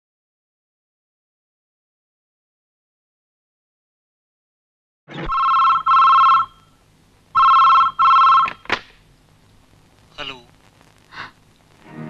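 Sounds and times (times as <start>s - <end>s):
telephone ringing: 5.1s - 6.8s, 7.4s - 8.7s.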